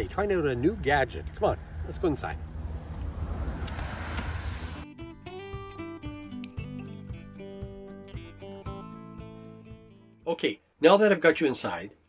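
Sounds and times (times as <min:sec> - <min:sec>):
low outdoor rumble: 0:00.0 - 0:04.8
acoustic guitar music: 0:04.9 - 0:10.3.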